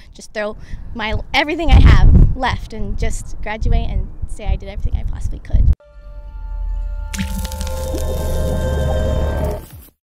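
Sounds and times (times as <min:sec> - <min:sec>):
music sting with held notes: 0:05.8 - 0:09.8
wet splat: 0:07.2 - 0:08.4.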